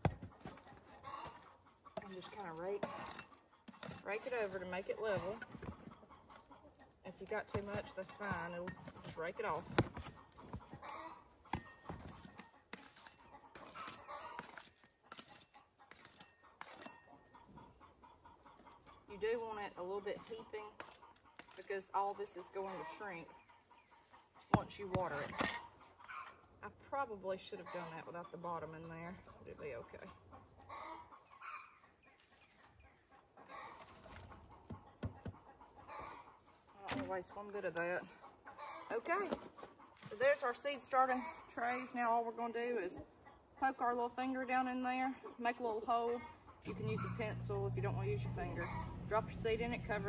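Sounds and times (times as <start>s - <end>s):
chickens clucking faintly: 0.0s - 40.4s.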